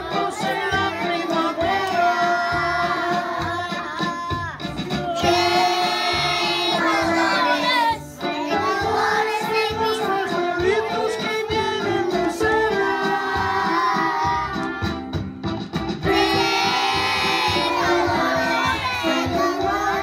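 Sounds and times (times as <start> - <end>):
children singing in unison: 0.0 - 4.4, 5.2 - 14.6, 16.1 - 20.0.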